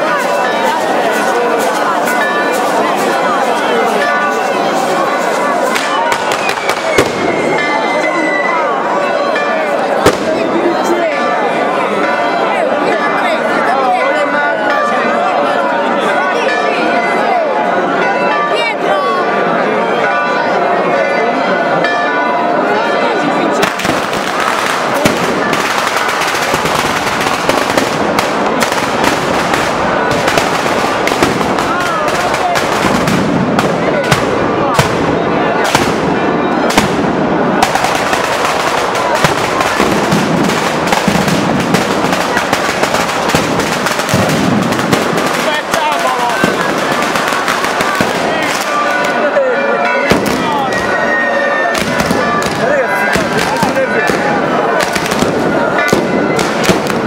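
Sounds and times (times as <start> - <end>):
firecrackers crackling rapidly: 0.0 - 7.7, 10.0 - 10.8, 23.5 - 49.3, 50.1 - 51.1, 51.7 - 57.0
crowd voices: 0.0 - 57.0.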